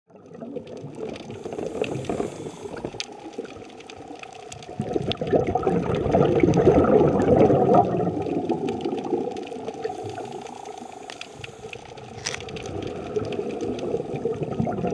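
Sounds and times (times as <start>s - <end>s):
scuba regulator exhalation bubbling: 0.1s - 14.9s
faint clicks: 0.9s - 5.2s, 8.3s - 14.2s.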